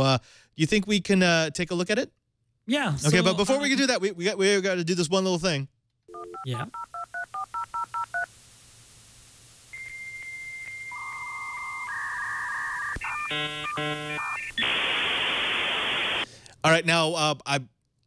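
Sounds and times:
modem answer tone: 0:06.1 - 0:07.1
touch-tone dialing beeps: 0:06.1 - 0:08.3, 0:09.8 - 0:14.5
hiss of data noise: 0:06.8 - 0:16.3.

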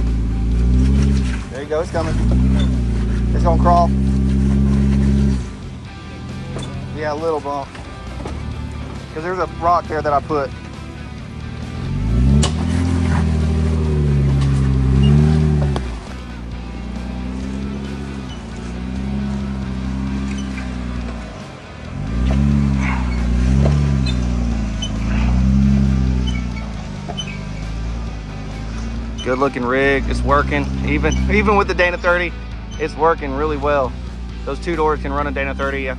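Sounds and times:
car engine revving: 0:00.0 - 0:35.9.

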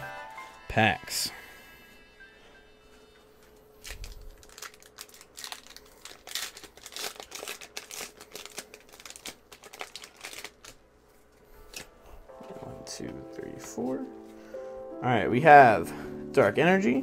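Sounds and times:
foil pack tearing and crinkling: 0:03.8 - 0:10.8.

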